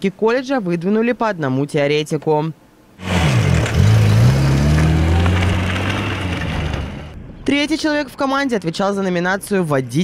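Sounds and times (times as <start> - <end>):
car driving past: 3.0 - 7.2.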